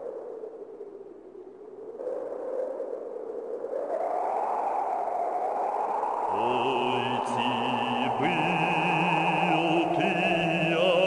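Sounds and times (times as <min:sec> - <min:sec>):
chanted song: 0:06.3 - 0:11.0.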